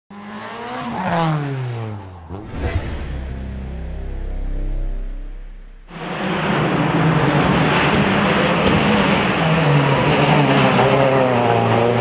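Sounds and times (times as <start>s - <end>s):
racing car passing by: 5.8s - 12.0s.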